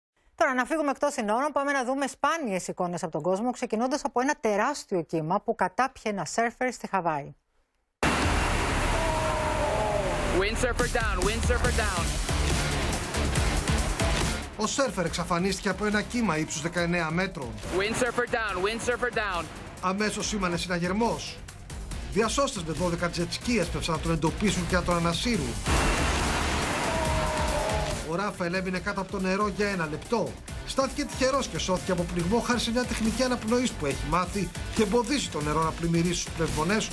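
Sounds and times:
ocean wave breaking: 8.0 - 10.6, 25.6 - 28.1
background music: 10.2 - 36.9.

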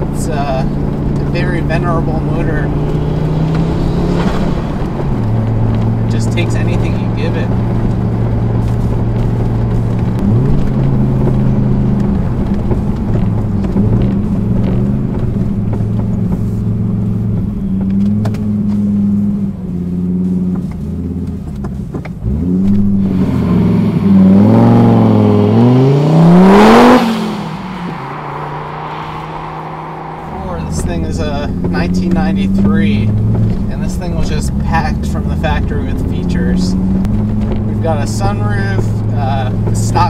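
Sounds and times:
car engine heard from inside: 0.0 - 40.0.

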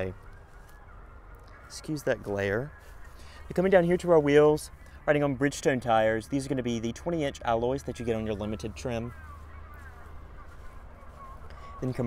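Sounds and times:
faint wavering bird calls: 0.0 - 12.0
steady low rumble: 0.0 - 12.0.

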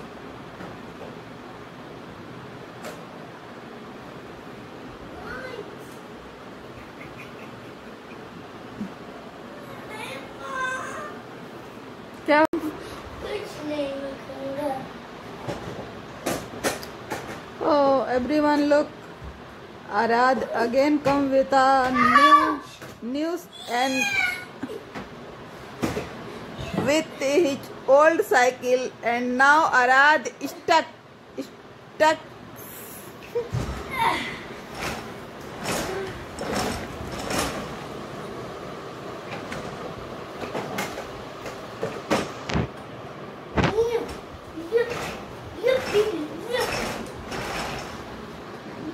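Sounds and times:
frame knocks and rattles: 34.6 - 38.0, 43.6 - 48.4
plastic wheels rolling on hard floor: 34.6 - 38.0, 43.6 - 48.3
plastic wheels rolling on tiles: 44.6 - 48.3.

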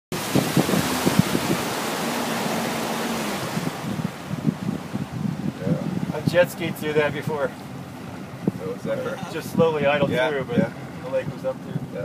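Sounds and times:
water knocking against hull: 0.1 - 6.2
rush of wind and water: 0.1 - 12.0.

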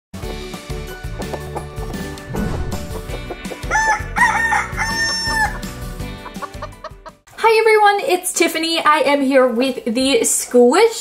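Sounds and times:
light music: 0.2 - 7.2
rooster crowing: 3.6 - 5.7.

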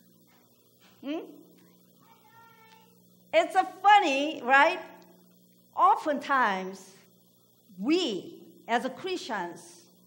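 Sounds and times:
woman saying hmm: 1.0 - 1.4.

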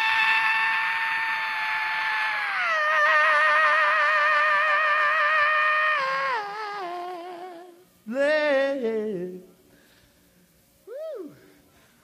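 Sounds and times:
man singing a long note: 0.0 - 9.5.

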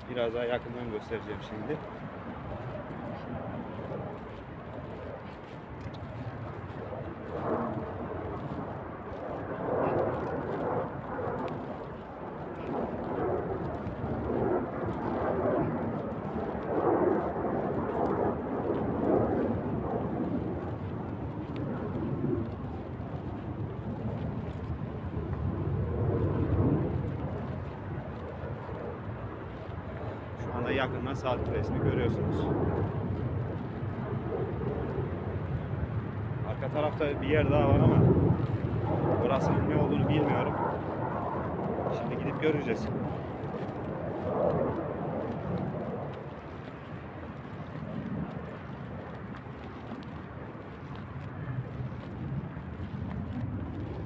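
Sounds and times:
wind buffeting microphone: 0.0 - 54.0.

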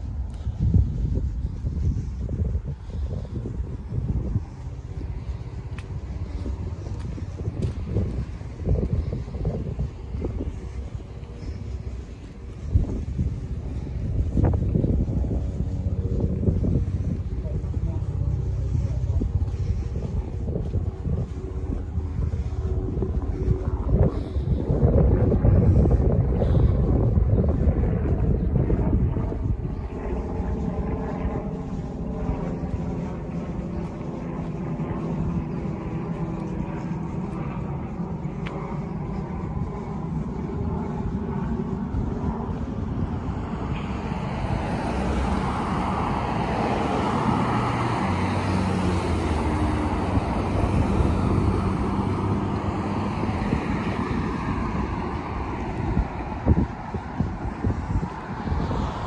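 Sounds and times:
broad rushing noise: 0.0 - 59.0
passing traffic engine hum: 0.0 - 59.0
wind buffeting microphone: 0.0 - 59.0.

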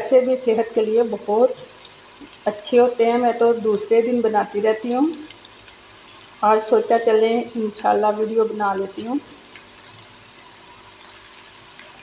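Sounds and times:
vegetables sizzling in oil: 0.0 - 12.0.

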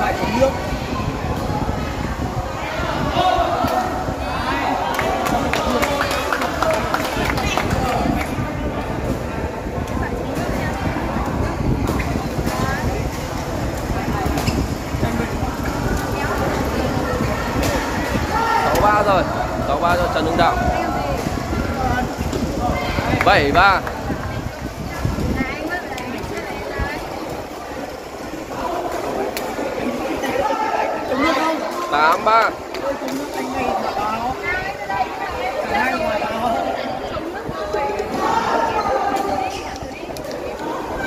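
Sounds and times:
people chattering: 0.0 - 41.0.

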